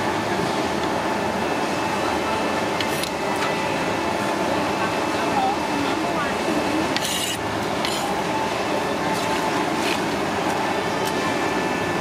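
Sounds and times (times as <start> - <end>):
busy food stall din: 0.0 - 12.0.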